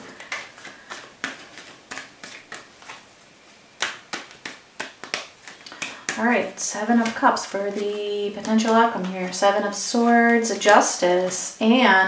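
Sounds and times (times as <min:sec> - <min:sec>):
cards clicking and snapping: 0:00.0 - 0:03.0, 0:03.8 - 0:06.2.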